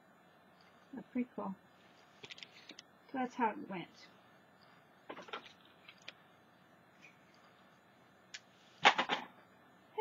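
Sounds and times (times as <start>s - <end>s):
small clicks and rustles: 1.8s - 2.9s, 5.1s - 6.2s.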